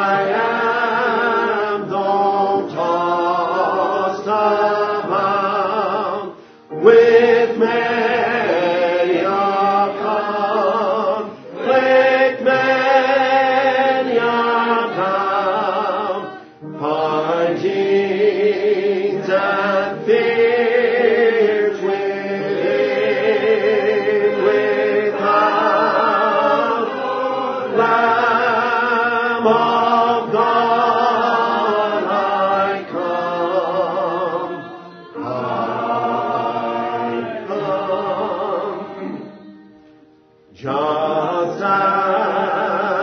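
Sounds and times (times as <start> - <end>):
congregation singing a hymn: 0.0 - 43.0.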